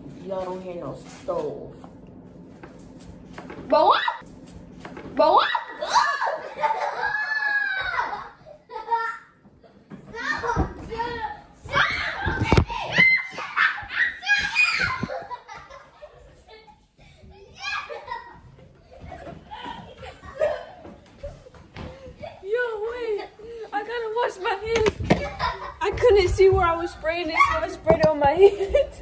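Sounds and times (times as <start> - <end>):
boys exclaiming and laughing: 5.2 - 29.0.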